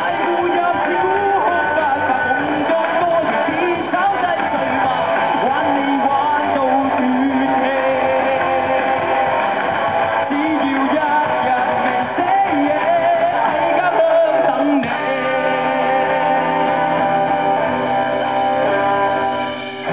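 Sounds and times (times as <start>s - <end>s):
man singing: 0.0s - 17.2s
live rock band playing: 0.0s - 19.9s.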